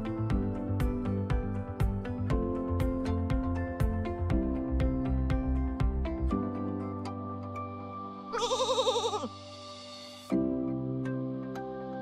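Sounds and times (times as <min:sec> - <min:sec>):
soft background music: 0:00.0 - 0:12.0
sheep bleating: 0:08.4 - 0:09.3.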